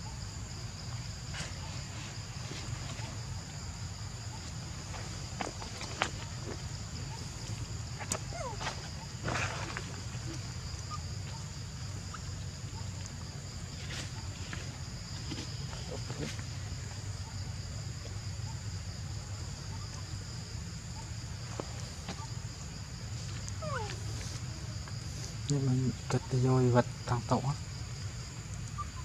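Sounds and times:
insects droning: 0.0s - 29.0s
monkey call: 8.0s - 11.5s, 23.6s - 24.4s, 28.8s - 29.0s.

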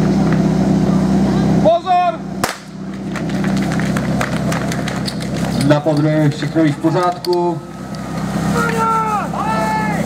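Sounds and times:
fire pump engine hum: 0.0s - 10.0s
starting pistol shot: 2.4s - 2.8s
clacks and knocks of gear: 3.0s - 7.5s
person shouting: 8.5s - 10.0s.

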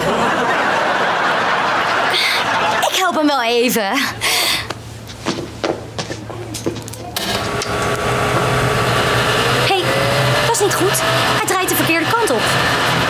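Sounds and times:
fan motor whine: 4.2s - 13.0s
low hum: 5.9s - 13.0s.

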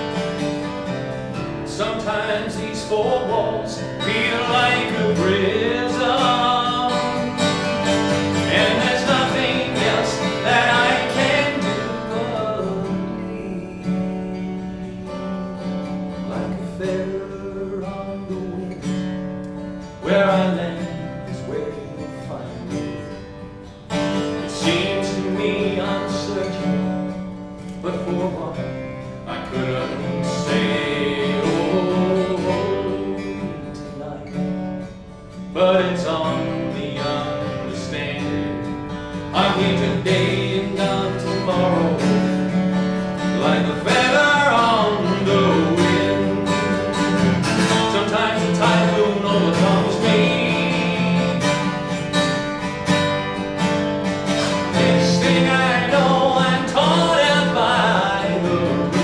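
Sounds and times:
acoustic guitar strummed and picked: 0.0s - 59.0s.

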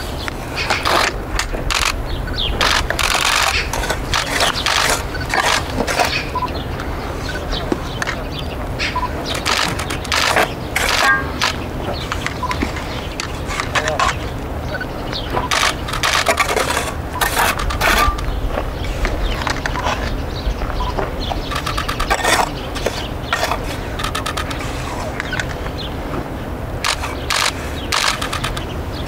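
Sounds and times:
trowel scraping mortar on stone: 0.6s - 1.6s, 2.8s - 6.4s, 9.4s - 11.4s, 15.4s - 18.3s, 21.6s - 25.2s
trowel scraping metal bucket: 3.2s - 6.4s, 9.4s - 11.6s, 15.7s - 18.3s, 21.6s - 24.2s.

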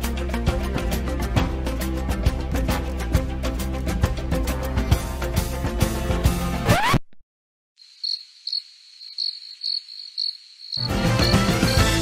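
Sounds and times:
music: 0.0s - 6.8s, 10.8s - 12.0s
crickets chirping: 7.8s - 11.8s.

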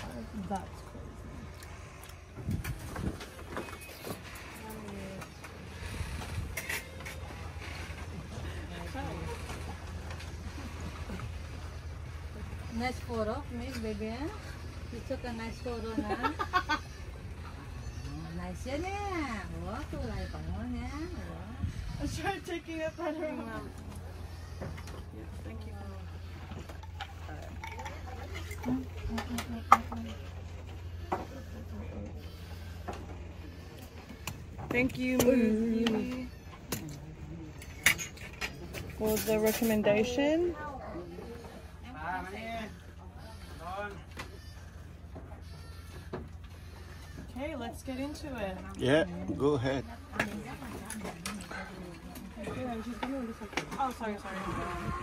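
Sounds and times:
quiet voices: 0.0s - 55.0s
steady low hum: 0.0s - 55.0s.

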